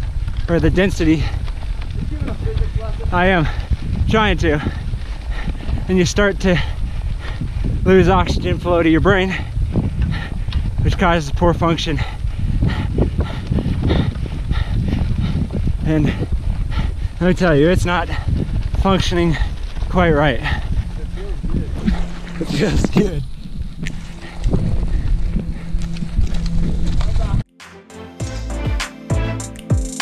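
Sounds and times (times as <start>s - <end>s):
stones and bike clicking: 0.0s - 27.4s
wind rumble on microphone: 0.0s - 27.5s
cyclist breathing hard: 1.2s - 27.0s.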